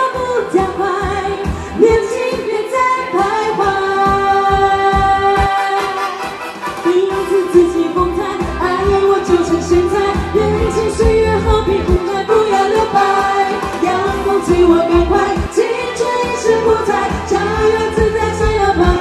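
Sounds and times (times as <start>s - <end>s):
amplified pop music with heavy bass: 0.0s - 19.0s
women singing into microphones: 0.0s - 19.0s.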